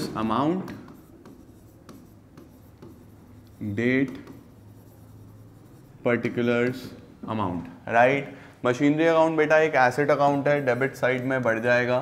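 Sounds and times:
stylus strokes on a screen: 0.0s - 7.1s, 9.6s - 12.0s.

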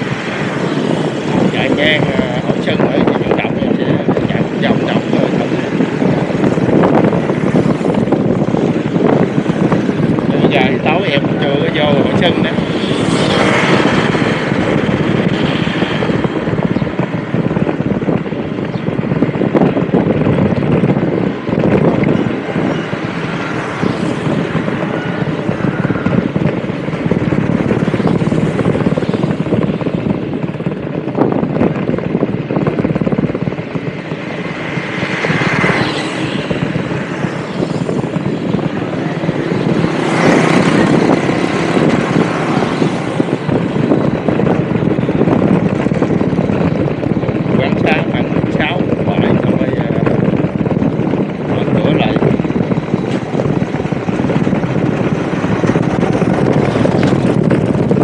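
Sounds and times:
vehicle engine and road noise: 0.0s - 58.0s
wind buffeting microphone: 0.0s - 58.0s.

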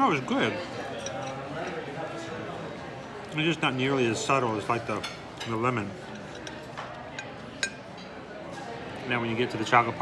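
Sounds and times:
restaurant murmur: 0.0s - 10.0s
metal spoon clinking on dish: 0.9s - 1.8s, 5.0s - 8.1s.

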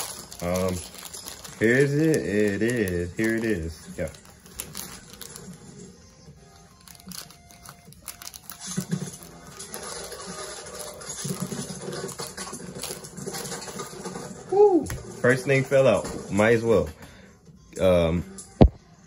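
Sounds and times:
scissors cutting plastic: 0.0s - 5.6s, 6.6s - 13.9s
plastic bag crinkling: 0.0s - 14.4s.

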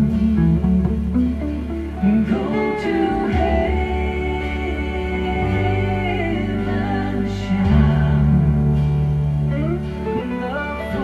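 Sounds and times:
electric guitar picked notes: 0.0s - 11.0s
sustained low bass note: 0.0s - 11.0s.

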